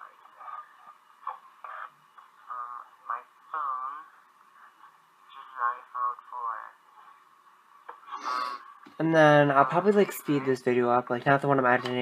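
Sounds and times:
man talking through laptop speakers: 9.0 - 12.0.

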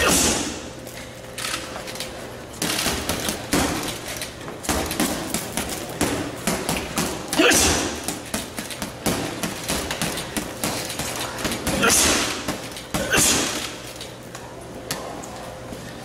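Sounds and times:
gloves punching heavy bag: 2.6 - 4.0, 4.6 - 13.8.

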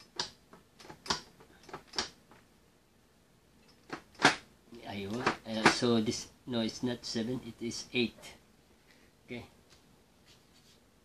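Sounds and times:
paper rustling on tabletop: 10.2 - 10.9.

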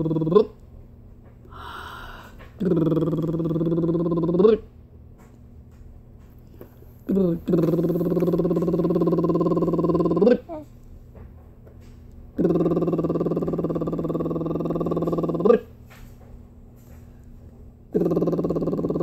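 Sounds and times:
voice humming low notes: 0.0 - 0.6, 1.5 - 4.7, 7.0 - 10.6, 12.4 - 15.7, 17.9 - 19.0.

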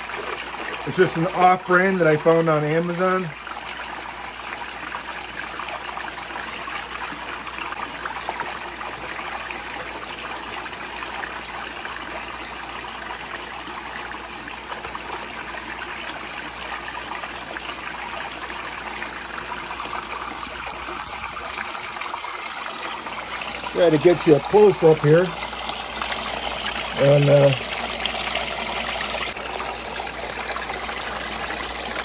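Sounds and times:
water running down a sluice: 0.0 - 32.0
water splashing into a tub: 0.0 - 32.0.

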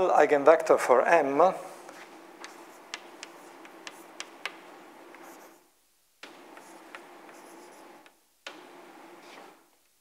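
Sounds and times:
chalk tapping on blackboard: 1.9 - 5.6, 6.2 - 9.4
chalk scratching on blackboard: 1.9 - 5.7, 6.3 - 8.1, 9.2 - 9.6.

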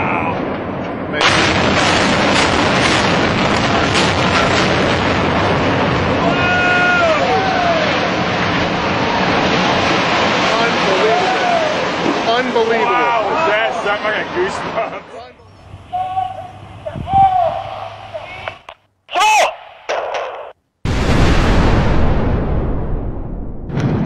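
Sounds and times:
demolition charges exploding: 0.0 - 14.8, 20.8 - 24.0
building collapse rumble: 0.0 - 18.6, 20.9 - 24.0
person whooping: 15.9 - 16.5, 17.1 - 17.7.

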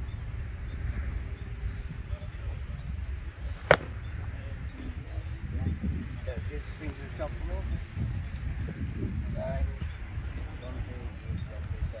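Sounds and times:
golf club striking ball: 3.6 - 4.1.

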